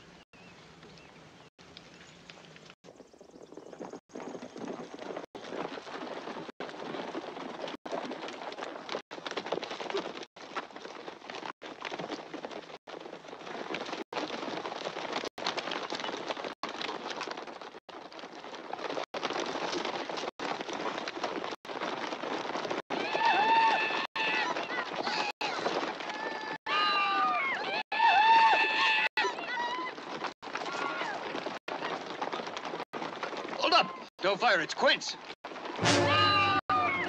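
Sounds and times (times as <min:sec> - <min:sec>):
hooves galloping: 0:00.0 - 0:37.0.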